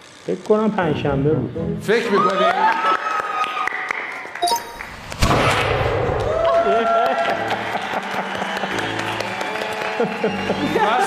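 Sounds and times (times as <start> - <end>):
audience applauding: 2.2 - 5.1, 6.0 - 11.0
game-show music: 4.4 - 5.5.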